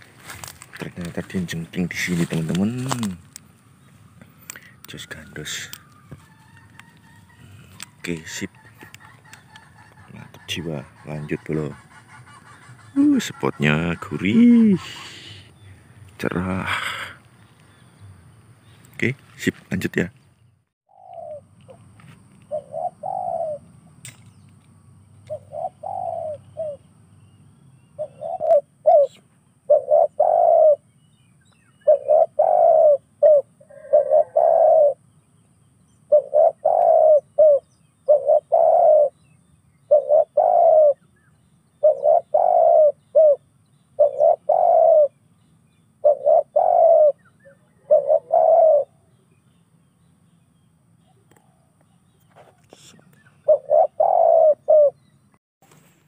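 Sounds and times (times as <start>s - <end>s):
bird calling low phrases: 0.0s - 55.4s.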